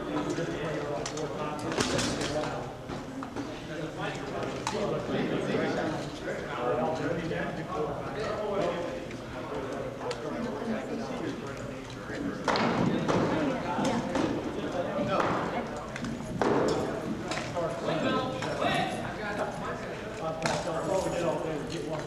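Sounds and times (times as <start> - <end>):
voices talking in a large hall: 0.0 - 22.0.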